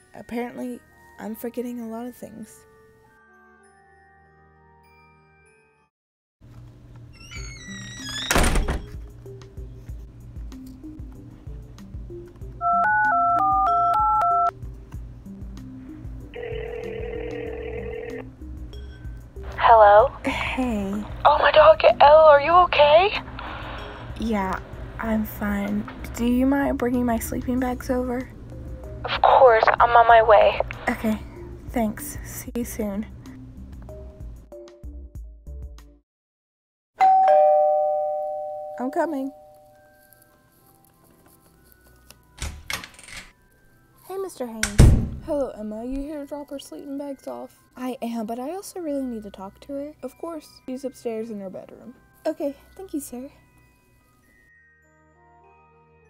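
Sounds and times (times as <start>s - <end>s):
phone keypad beeps: 12.6s - 14.5s
phone ringing tone: 12.6s - 14.5s, 16.4s - 18.3s, 37.0s - 39.8s
two-tone doorbell chime: 37.0s - 40.2s.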